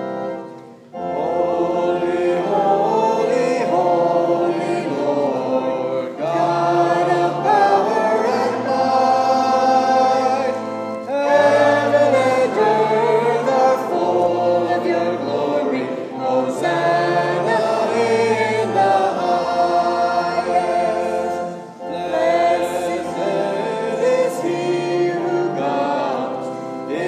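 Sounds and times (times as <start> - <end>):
choir singing sustained chords: 0.0 - 27.0.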